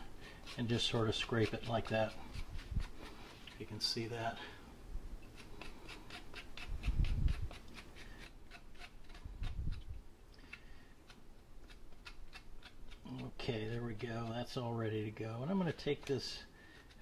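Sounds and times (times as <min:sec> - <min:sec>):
spoon scraping ginger: 0:00.0 - 0:04.1, 0:05.2 - 0:17.0.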